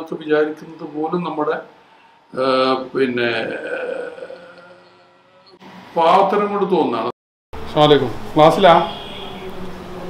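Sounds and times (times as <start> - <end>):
man talking: 0.0 - 1.7, 2.3 - 4.4, 7.7 - 9.0.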